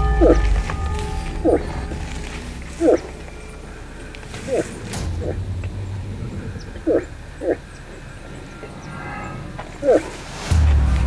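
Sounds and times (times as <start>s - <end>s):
moose grunting: 0.0s - 10.5s.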